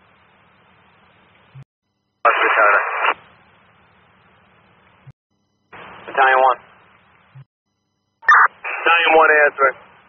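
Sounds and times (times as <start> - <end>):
radio transmission: 2.2 - 3.2, 5.8 - 6.6, 8.3 - 9.8
radio static hiss: 2.2 - 3.4, 5.8 - 6.6, 8.3 - 9.8.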